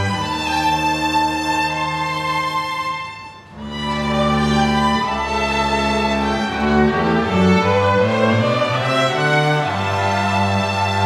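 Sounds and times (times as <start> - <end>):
string orchestra playing bowed chords: 0.0 - 11.0.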